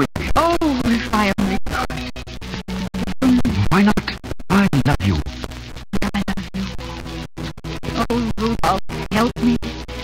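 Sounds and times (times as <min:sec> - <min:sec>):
old radio music with gliding notes: 0:00.0 - 0:10.0.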